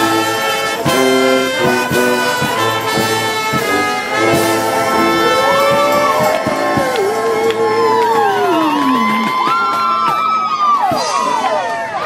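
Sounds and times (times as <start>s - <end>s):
brass band long sliding note: 0.0s - 7.3s
crowd cheering and whooping: 4.2s - 12.0s.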